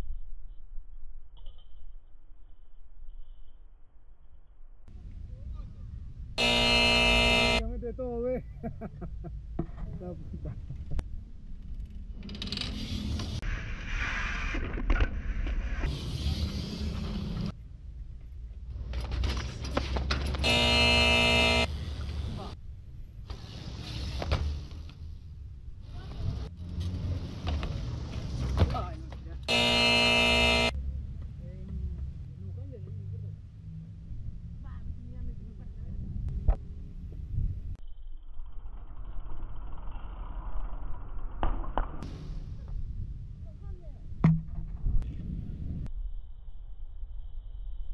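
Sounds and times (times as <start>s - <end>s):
loud steady pitched tone: 6.4s - 7.6s, 20.4s - 21.7s, 29.5s - 30.8s
bike tyres rolling on concrete: 21.7s - 29.4s.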